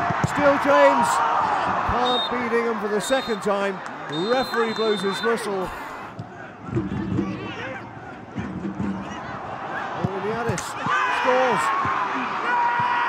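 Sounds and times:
stadium background noise: 0.0 - 13.0
voices talking: 1.9 - 6.0.

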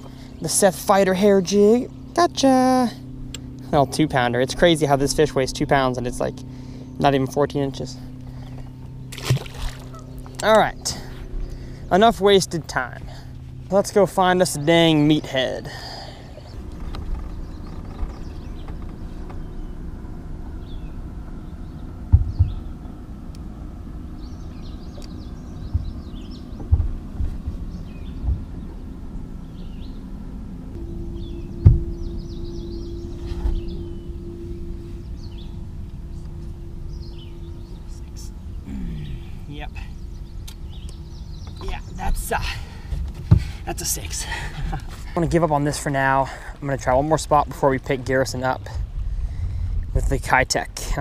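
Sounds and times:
electric boat motor humming: 0.0 - 50.4.

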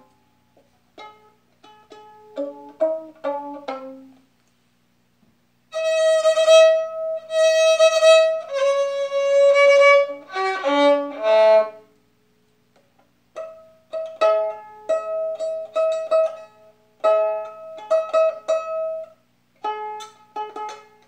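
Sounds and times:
plucked pizzicato violin notes: 0.0 - 4.3, 5.7 - 11.9, 13.3 - 21.0
bowed violin notes: 1.0 - 4.2, 5.7 - 11.9.

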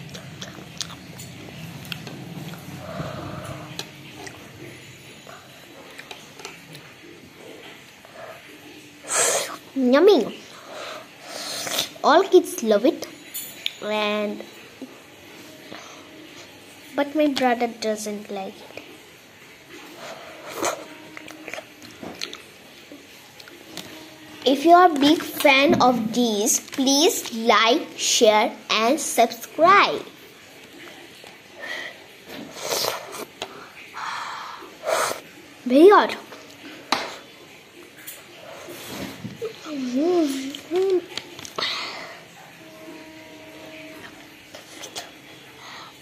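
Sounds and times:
soft breathy hiss: 8.1 - 9.7, 10.4 - 12.1, 31.6 - 35.3, 44.5 - 46.0
girl saying yummy: 39.4 - 41.1.

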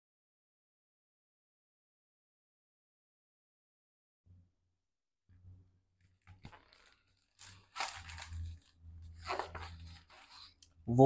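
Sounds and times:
low hum: 5.3 - 11.0
paper pages rustling and turning: 6.0 - 10.8.

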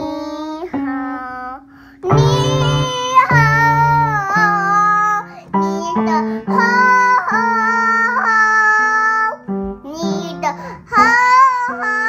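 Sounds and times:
girl singing loudly: 0.0 - 12.0
upright piano: 0.0 - 12.0.

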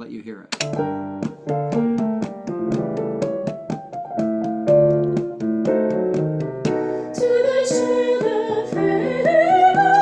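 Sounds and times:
piano playing chords: 0.6 - 10.0.

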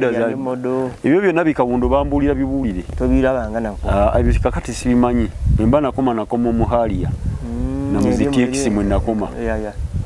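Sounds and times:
man talking: 0.0 - 9.8.

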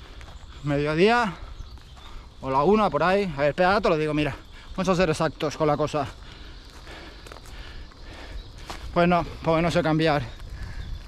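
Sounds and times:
wind rumbling on microphone: 8.1 - 11.0.

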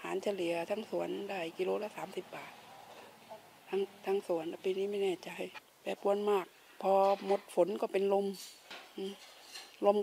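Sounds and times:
woman speaking: 0.0 - 2.7, 3.3 - 8.4, 9.0 - 9.2, 9.8 - 10.0.

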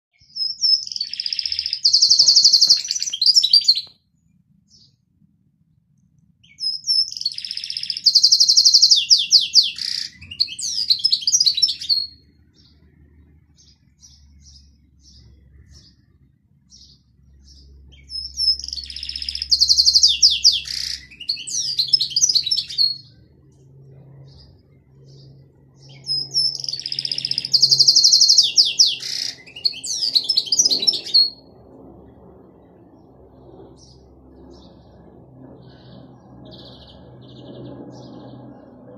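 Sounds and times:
canary singing trills: 0.1 - 3.9, 6.4 - 31.5
canary single chirps: 0.2 - 3.9.

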